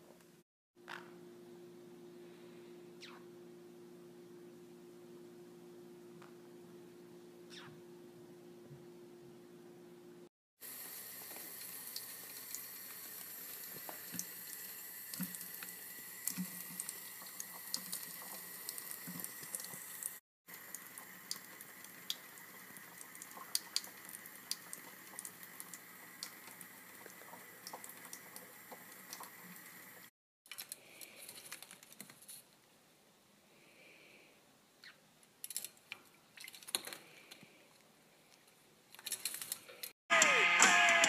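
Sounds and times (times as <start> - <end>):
water running into a sink: 10.6 - 30.1.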